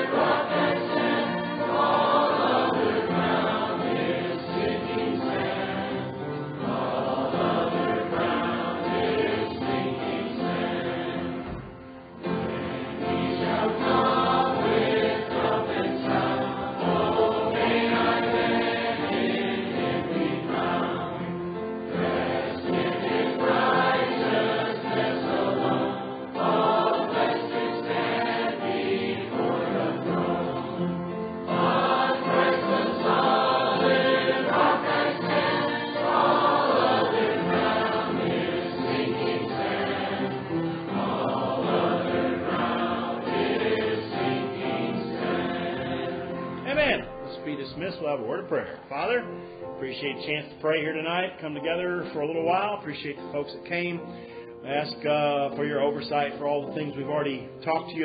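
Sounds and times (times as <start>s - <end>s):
group singing a hymn: 0.0s - 46.7s.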